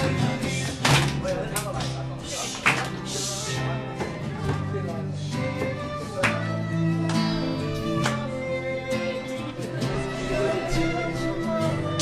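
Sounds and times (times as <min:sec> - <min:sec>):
acoustic band playing: 0:00.0 - 0:12.0.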